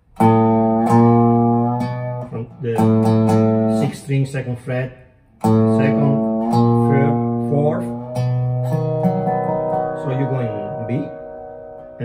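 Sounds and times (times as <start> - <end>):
slide resonator guitar: 0.0 - 4.5, 5.4 - 12.0.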